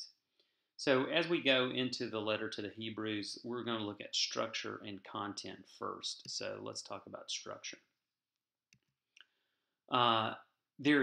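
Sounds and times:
man's voice: 0:00.8 - 0:07.8, 0:09.9 - 0:11.0.

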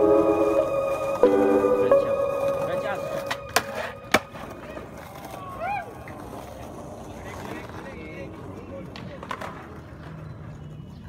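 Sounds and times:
skateboard rolling on concrete: 0:02.4 - 0:11.0
skateboard clacks: 0:03.2 - 0:11.0.

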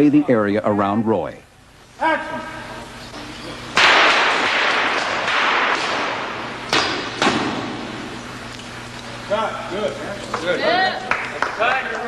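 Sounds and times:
sharp cracks: 0:03.7 - 0:08.6.

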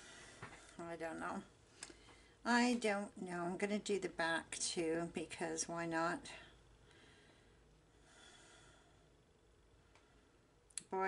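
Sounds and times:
faint breath: 0:00.0 - 0:00.8, 0:01.7 - 0:02.4, 0:06.4 - 0:09.2.

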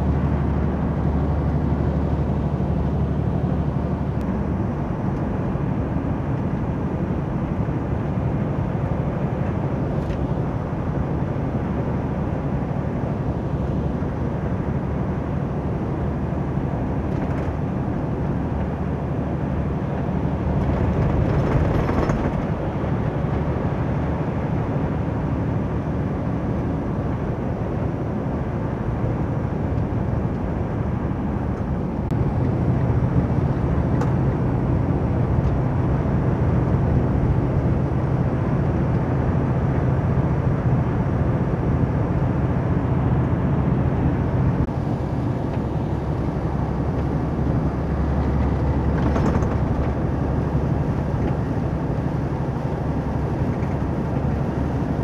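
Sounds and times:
diesel engine drone: 0:00.0 - 0:55.0
tyre and road noise: 0:12.0 - 0:55.0.

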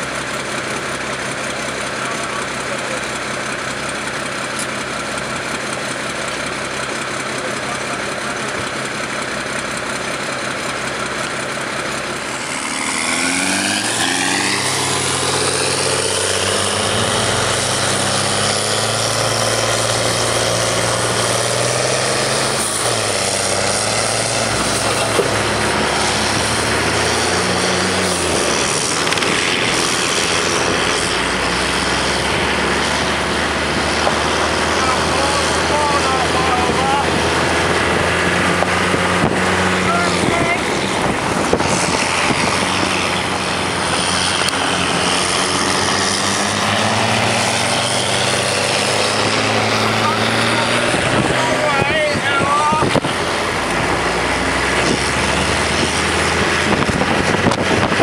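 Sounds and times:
armoured vehicle engine idling: 0:00.0 - 0:58.0
engine revving: 0:00.0 - 0:58.0.

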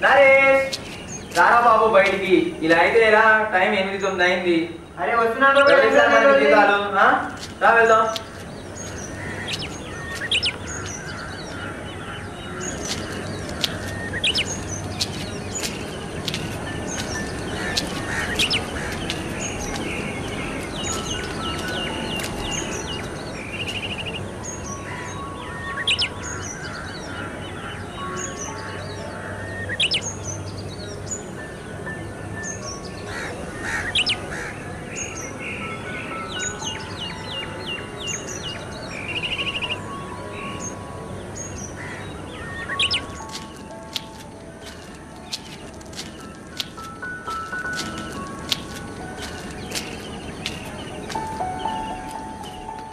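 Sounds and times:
background music: 0:00.0 - 0:52.9
birdsong chirps and trills: 0:00.0 - 0:52.9.

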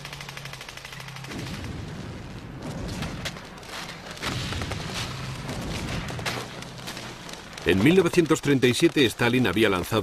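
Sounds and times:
machine gun firing: 0:00.0 - 0:09.8.

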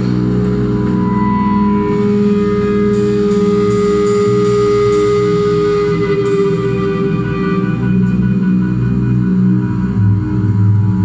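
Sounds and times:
electric guitars holding long notes: 0:00.0 - 0:11.0
steady low drone: 0:00.0 - 0:11.0.

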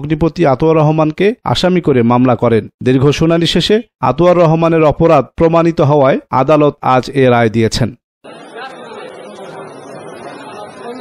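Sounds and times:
crowd chatter: 0:08.2 - 0:11.0.

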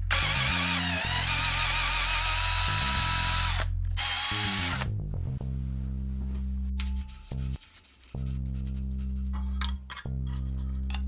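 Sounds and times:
cordless drill boring into metal: 0:00.1 - 0:04.9
background music with bass line: 0:02.5 - 0:11.0.

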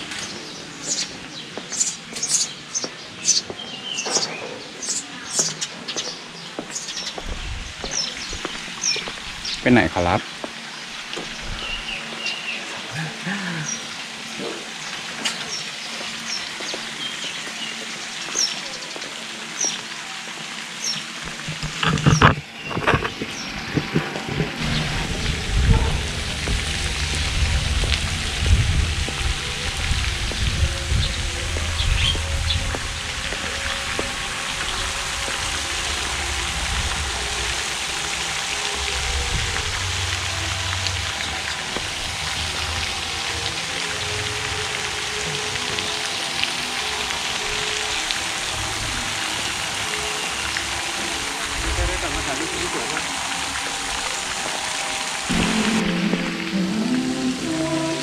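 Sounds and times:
fountain water splashing: 0:00.0 - 0:58.0
wind rumbling on microphone: 0:07.1 - 0:09.7, 0:11.2 - 0:12.0, 0:21.3 - 0:37.9, 0:38.8 - 0:43.0.

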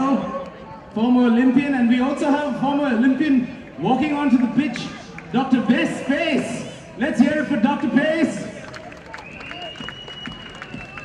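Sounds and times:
hand clapping from small group: 0:08.6 - 0:11.0.

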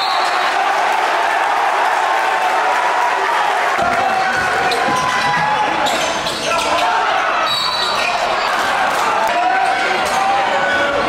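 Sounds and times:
crowd voices and shouting: 0:00.0 - 0:11.0.

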